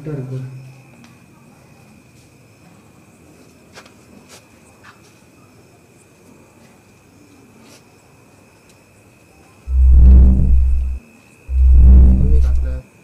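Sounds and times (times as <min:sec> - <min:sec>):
deep booming: 0:09.7 - 0:12.8
wavering voice-like tone: 0:09.7 - 0:12.8.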